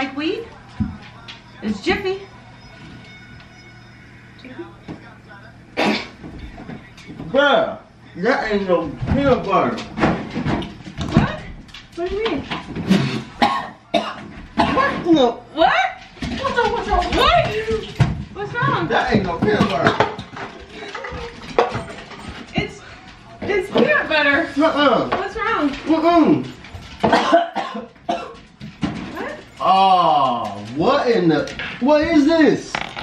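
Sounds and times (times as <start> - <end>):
man coughing: 5.8 - 6.2, 12.9 - 14.8, 27.1 - 28.4
handling noise: 32.3 - 33.0.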